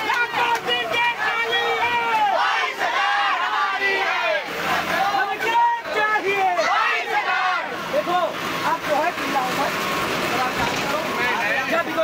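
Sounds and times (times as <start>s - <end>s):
crowd of protesters shouting: 0.0s - 8.6s.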